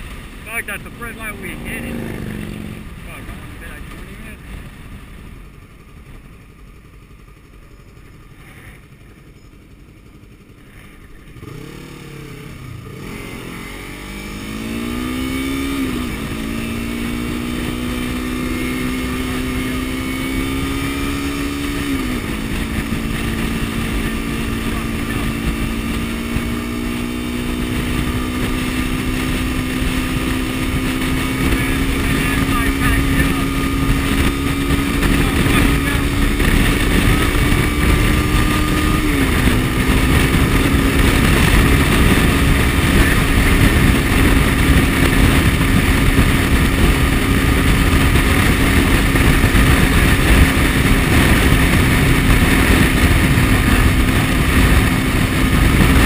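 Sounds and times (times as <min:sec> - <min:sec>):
wind rushing at microphone: 0:00.0 - 0:06.0, 0:11.0 - 0:56.0
motorcycle engine accelerating: 0:00.0 - 0:56.0.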